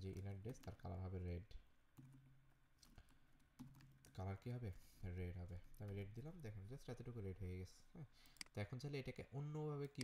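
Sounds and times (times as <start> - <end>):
keyboard typing: 2.0 - 4.2.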